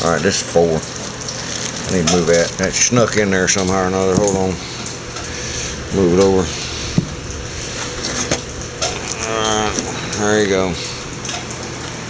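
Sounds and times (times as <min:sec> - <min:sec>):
man's drawn-out vocal sound: 0:08.9 - 0:10.3.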